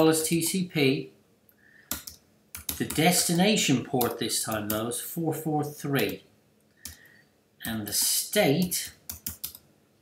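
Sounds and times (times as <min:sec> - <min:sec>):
computer keyboard keystrokes: 0:01.9 - 0:03.2, 0:08.8 - 0:09.7.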